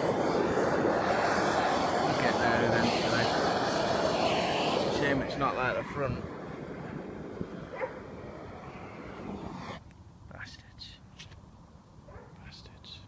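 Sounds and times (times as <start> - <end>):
gas blowlamp rushing: 0.0 - 9.8.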